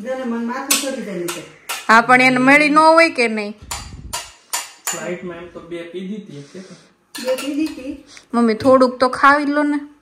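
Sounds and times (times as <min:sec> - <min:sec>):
spoon clinking on steel bowls: 0:00.7 - 0:01.9, 0:07.1 - 0:08.0.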